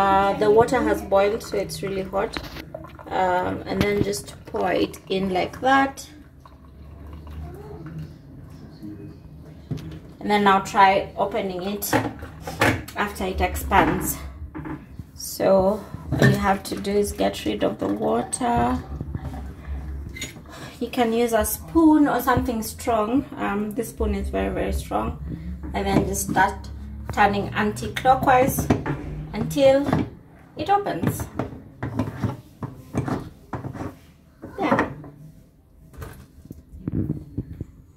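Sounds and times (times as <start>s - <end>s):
plastic jerrycan moved in sink: 30.9s - 35.0s.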